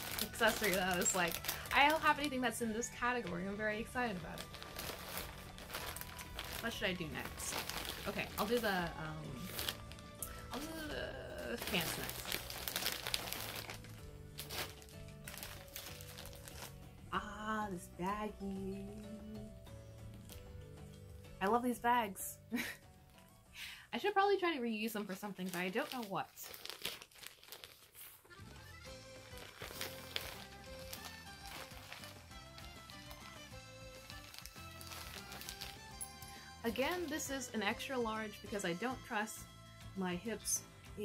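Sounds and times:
plastic bag crinkling: 0:00.0 - 0:16.9, 0:24.8 - 0:37.3
soft background music: 0:00.0 - 0:41.0.

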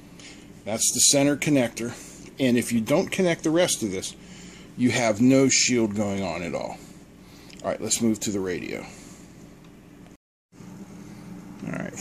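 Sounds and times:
low background hum: 0:00.0 - 0:12.0
man speaking: 0:00.6 - 0:04.2, 0:04.8 - 0:06.8.

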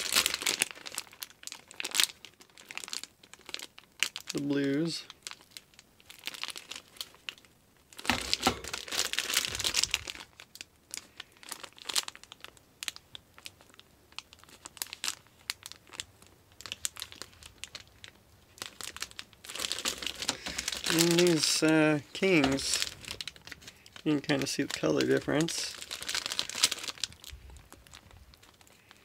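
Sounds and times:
plastic bags crinkling: 0:00.0 - 0:29.0.

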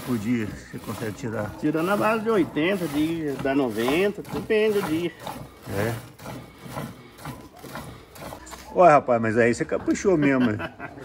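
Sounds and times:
milk squirting into bucket: 0:00.0 - 0:09.0.

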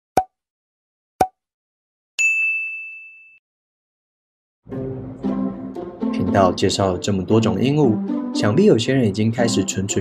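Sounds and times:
bright ding: 0:02.2 - 0:03.4.

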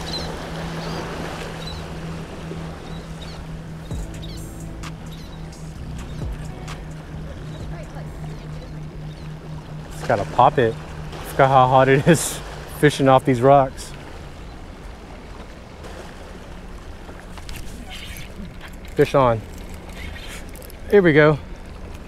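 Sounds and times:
constant low hum: 0:00.0 - 0:22.0.

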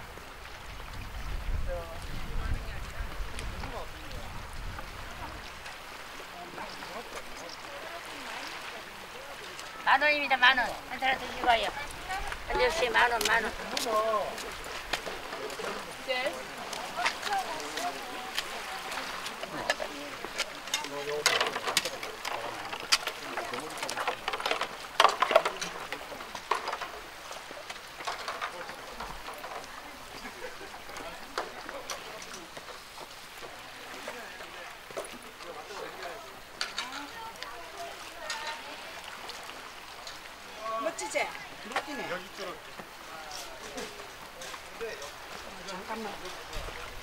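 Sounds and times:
sea washing against rocks: 0:00.0 - 0:47.0
people chattering: 0:01.6 - 0:47.0.

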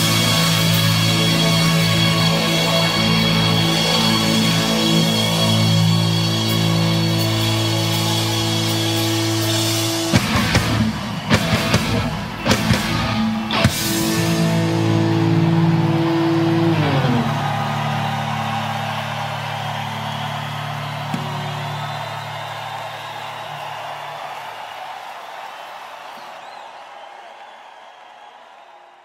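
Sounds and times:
rock band chord on guitars and bass: 0:00.0 - 0:19.5.

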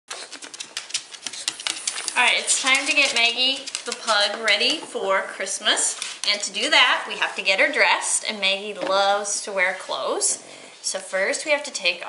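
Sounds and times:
dog claws clicking on hard floor: 0:00.1 - 0:04.9, 0:05.9 - 0:06.7.

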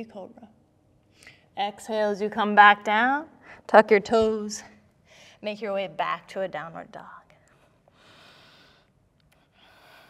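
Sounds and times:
soft breath: 0:07.5 - 0:10.0.

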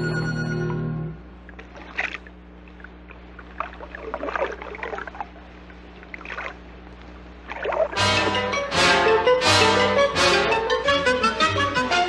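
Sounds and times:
faint low hum: 0:00.0 - 0:12.0
water splashes and gurgles: 0:01.4 - 0:08.2.

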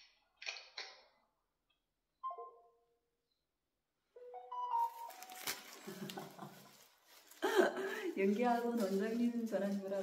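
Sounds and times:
electronic chime rising tones: 0:04.2 - 0:05.2
rustling noise: 0:04.7 - 0:10.0.

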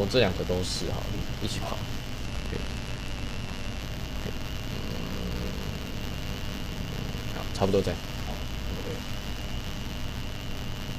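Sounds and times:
background hum and hiss: 0:00.0 - 0:10.9.

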